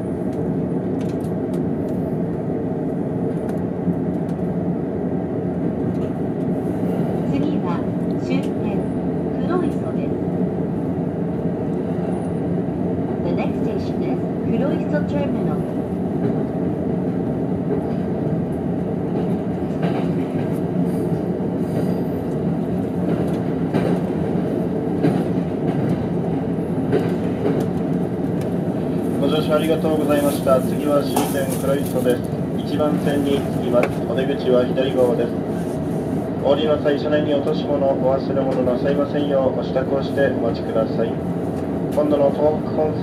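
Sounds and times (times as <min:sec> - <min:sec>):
train wheels rumbling on rails: 0:00.0 - 0:43.0.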